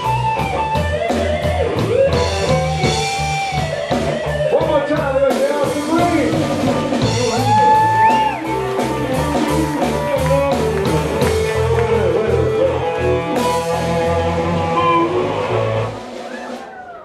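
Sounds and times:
electric guitar lines: 0.0 - 16.2
electric blues band playing: 0.0 - 17.0.

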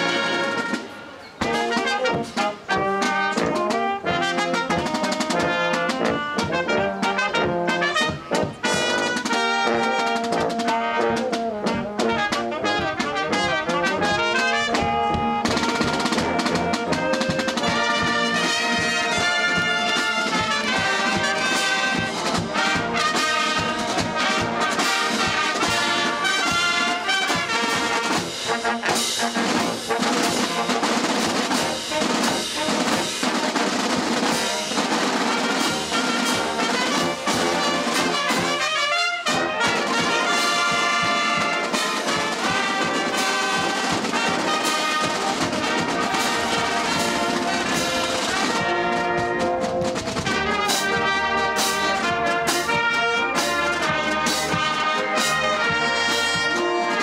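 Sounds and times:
brass and saxophones: 0.0 - 57.0
marching snare drums: 0.0 - 57.0.

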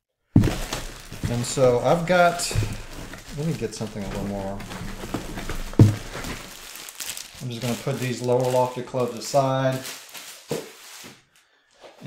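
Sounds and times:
faint handling noise: 0.4 - 11.2.

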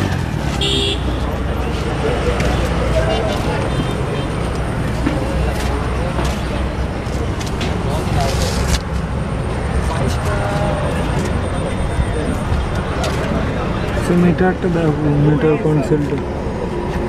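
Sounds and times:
people talking: 1.1 - 9.0, 9.7 - 17.0.

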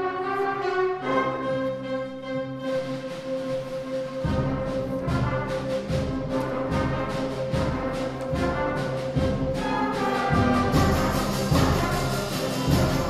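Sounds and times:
concert band playing: 2.0 - 13.0.

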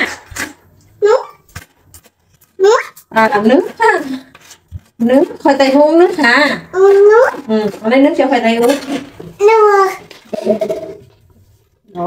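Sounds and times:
toddler wordless vocal sound: 1.0 - 1.4, 2.6 - 3.0, 6.7 - 7.5, 9.3 - 11.0.

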